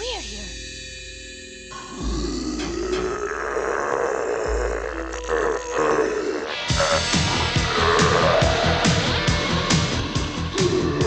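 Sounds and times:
deep guttural creature growl: 0:01.8 - 0:11.0.

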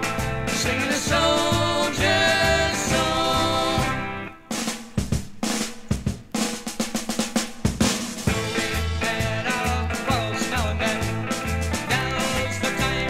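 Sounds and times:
folk-rock band playing: 0:00.0 - 0:13.0
snare and drum kit strokes: 0:00.0 - 0:13.0.

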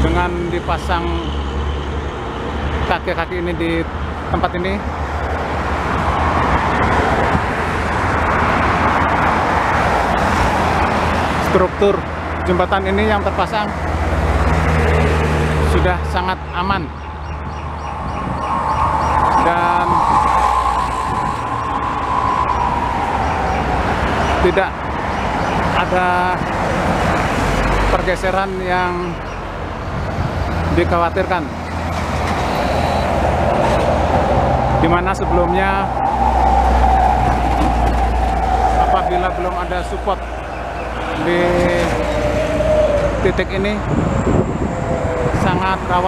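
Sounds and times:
passing vehicle whine: 0:00.0 - 0:46.0
traffic rumble: 0:00.0 - 0:46.0.

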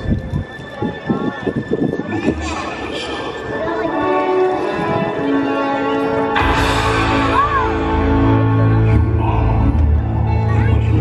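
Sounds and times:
dramatic voice over loudspeakers: 0:01.9 - 0:04.8, 0:06.4 - 0:11.0.

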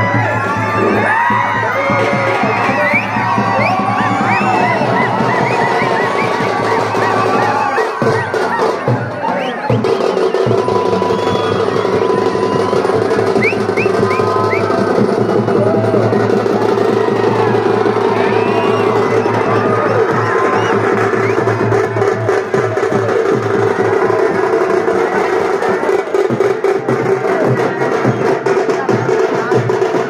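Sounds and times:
fast dense drumming: 0:00.0 - 0:30.0
large crowd voices: 0:00.0 - 0:30.0.

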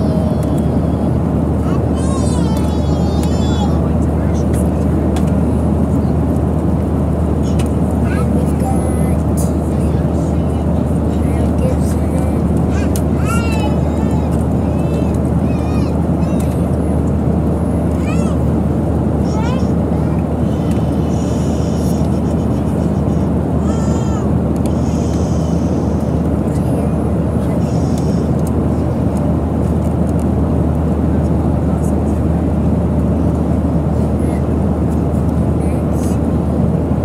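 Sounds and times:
airliner cabin engine drone: 0:00.0 - 0:37.0.

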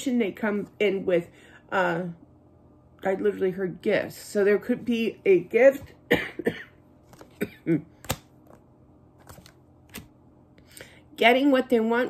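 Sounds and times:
woman coughing: 0:06.0 - 0:07.9.

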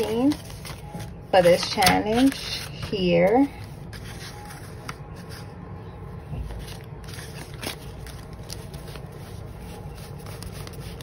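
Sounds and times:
paper crackles and clicks: 0:00.0 - 0:05.5, 0:06.4 - 0:11.0
paper banknotes rustling: 0:00.0 - 0:05.6, 0:06.4 - 0:11.0.

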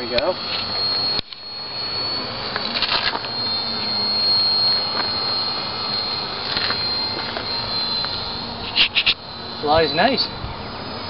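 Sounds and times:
model airplane droning: 0:00.0 - 0:11.0.

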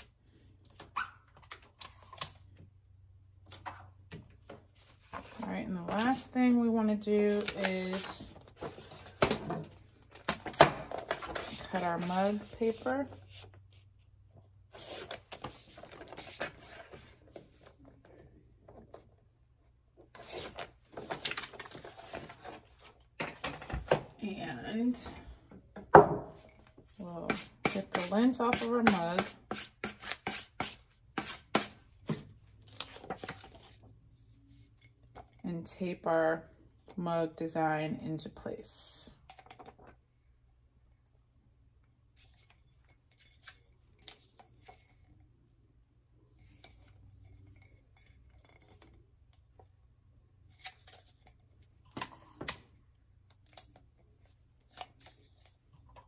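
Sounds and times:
paper handling: 0:07.2 - 0:09.3
faint clicks and rustles of handling: 0:32.0 - 0:37.0, 0:41.8 - 0:56.0.

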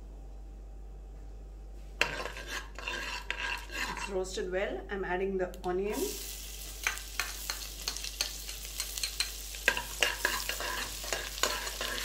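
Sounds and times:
ladle scraping and stirring: 0:02.0 - 0:04.3, 0:06.8 - 0:12.0.

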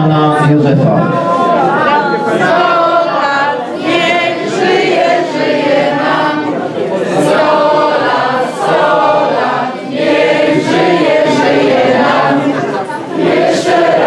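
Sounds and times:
group singing unaccompanied: 0:01.0 - 0:14.0.

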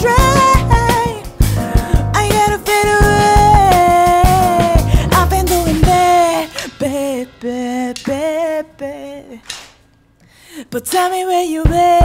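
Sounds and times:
woman singing: 0:00.0 - 0:01.4, 0:02.1 - 0:09.6, 0:10.6 - 0:12.0
live band playing: 0:00.0 - 0:07.5.

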